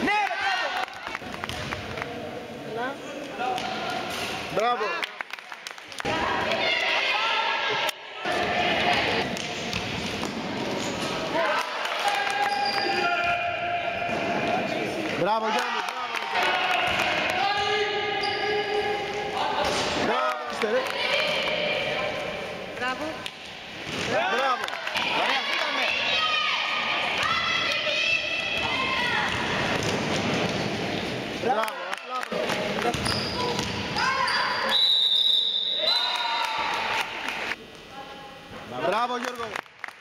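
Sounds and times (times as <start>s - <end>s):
people shouting: 24.1s - 29.7s
basketball bouncing on gym floor: 32.8s - 34.1s
referee's whistle blast: 34.2s - 36.4s.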